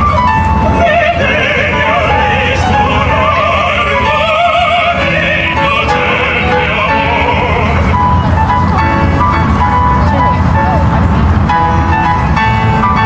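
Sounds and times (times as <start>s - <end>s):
operatic singing: 0.0s - 8.5s
constant low rumble: 0.0s - 13.0s
piano: 0.0s - 13.0s.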